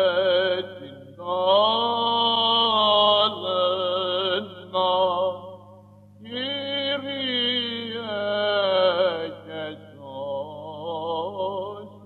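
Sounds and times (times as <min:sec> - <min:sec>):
man chanting a hymn: 0:00.0 - 0:05.5, 0:06.2 - 0:12.0.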